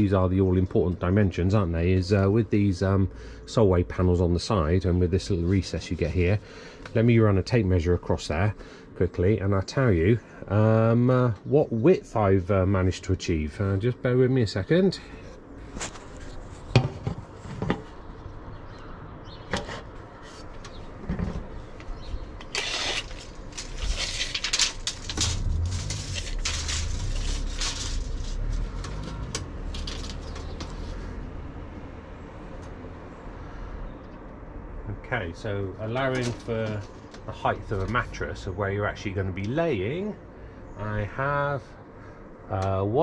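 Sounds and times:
rustling and shuffling: 15.3 - 18.1, 19.5 - 31.2, 35.9 - 38.2
low rumble: 23.6 - 32.9.

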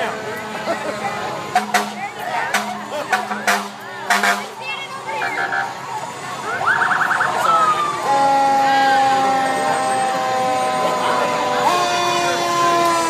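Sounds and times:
fire engine horn blast: 0.1 - 4.6, 7.8 - 13.0
fire engine siren yelp: 5.0 - 13.0.

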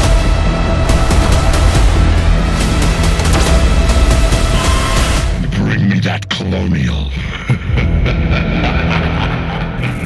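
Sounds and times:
loud low drone: 0.0 - 5.5.

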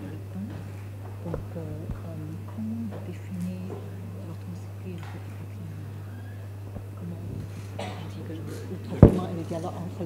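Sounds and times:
low electrical hum: 0.0 - 10.0
low murmured voices: 0.0 - 10.0.

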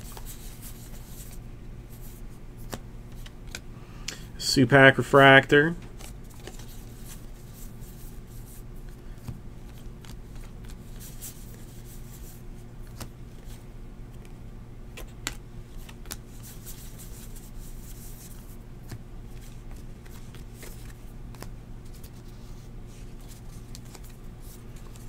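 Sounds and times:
faint low hum: 0.0 - 25.0
trading cards flipped by hand: 2.0 - 3.6, 5.8 - 25.0.

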